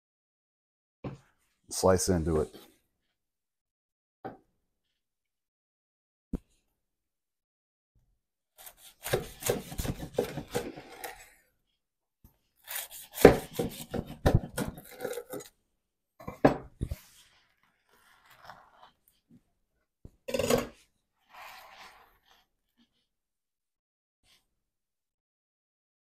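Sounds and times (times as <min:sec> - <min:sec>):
knife sawing crusty bread: 0:08.6 - 0:11.5, 0:12.6 - 0:15.5, 0:17.0 - 0:19.0, 0:21.2 - 0:23.0.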